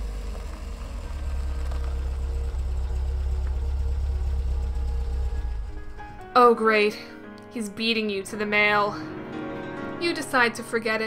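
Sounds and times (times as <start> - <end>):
car engine rumbling: 0.0 - 6.7.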